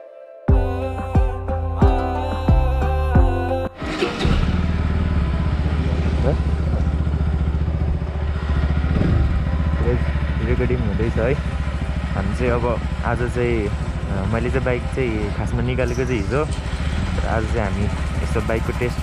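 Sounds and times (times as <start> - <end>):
background music: 0.0 - 4.5
motorcycle engine running at low revs: 4.2 - 19.0.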